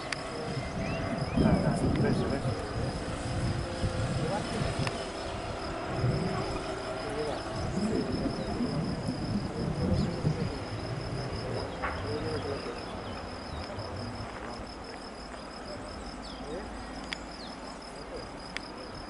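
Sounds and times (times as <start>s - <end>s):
insect chirring: 0.0s - 19.0s
low uneven rumbling: 0.0s - 19.0s.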